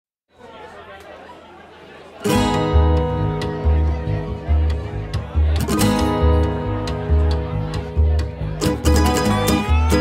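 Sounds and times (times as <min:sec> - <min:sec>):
murmur of people chatting: 0:00.3 - 0:10.0.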